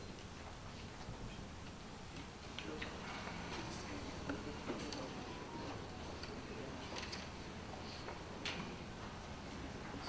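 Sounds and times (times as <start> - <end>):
low room murmur: 0.0 - 10.0.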